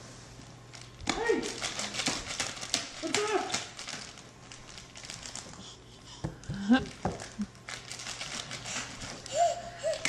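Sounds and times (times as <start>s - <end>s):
plastic bag crinkling: 0.7s - 5.8s, 6.9s - 10.0s
baby squealing: 9.3s - 10.0s.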